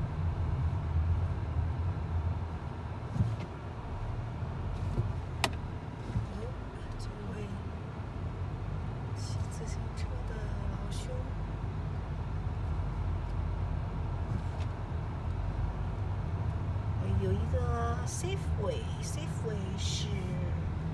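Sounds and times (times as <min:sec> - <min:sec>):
car road and engine rumble: 0:00.0 - 0:20.9.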